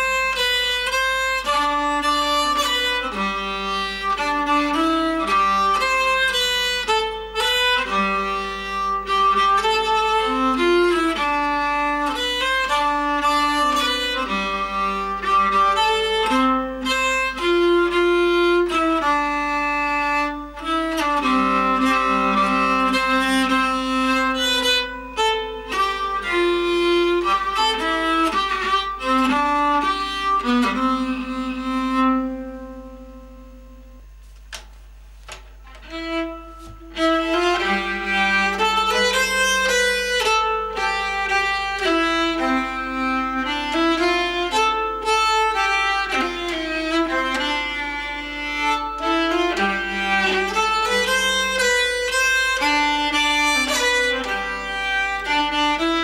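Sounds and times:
bowed string folk melody: 0:00.0 - 0:56.0
held drone: 0:35.7 - 0:56.0.

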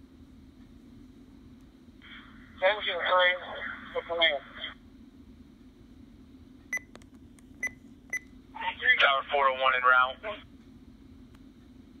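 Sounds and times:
radio voice: 0:02.6 - 0:04.8, 0:08.6 - 0:10.4.

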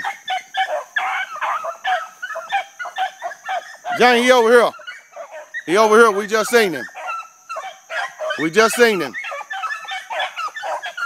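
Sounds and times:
pack of dogs baying: 0:00.0 - 0:11.0.

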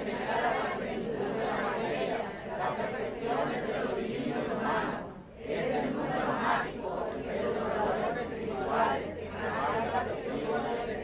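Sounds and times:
indistinct background voices: 0:00.0 - 0:11.0.

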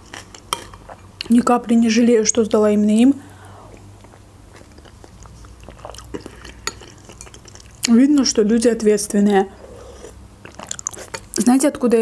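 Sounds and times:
chewing: 0:03.7 - 0:08.0, 0:09.8 - 0:11.4.

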